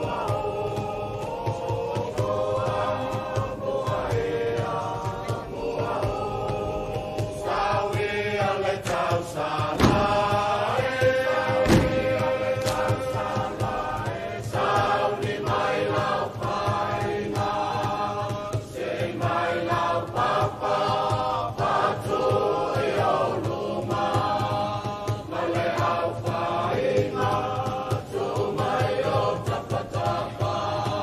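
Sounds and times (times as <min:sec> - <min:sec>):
group singing in unison: 0:00.0 - 0:31.0
steady beat: 0:00.0 - 0:31.0.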